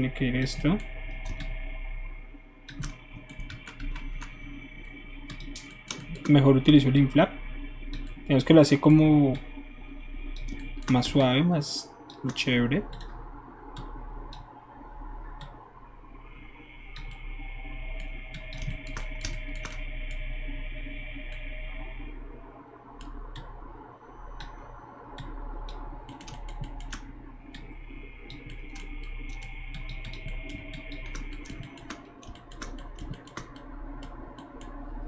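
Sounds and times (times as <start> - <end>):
faint steady whine: 0.0 - 35.0
keyboard and mouse clicks: 0.6 - 1.6, 2.7 - 4.4, 5.3 - 6.4, 10.4 - 11.3, 12.1 - 14.5, 18.0 - 20.2, 25.2 - 27.7, 28.3 - 34.8.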